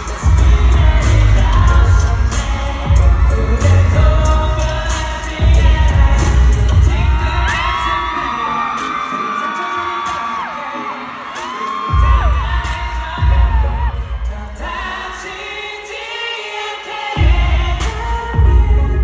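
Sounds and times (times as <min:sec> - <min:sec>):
person singing: 0:00.0 - 0:19.0
pop song through concert speakers: 0:00.0 - 0:19.0.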